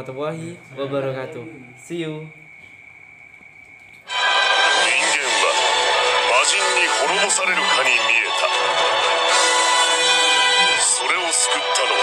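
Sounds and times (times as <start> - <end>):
faint thin steady whine: 0.0 - 12.0
soundtrack music: 4.1 - 12.0
person speaking over music: 4.7 - 8.6, 10.0 - 12.0.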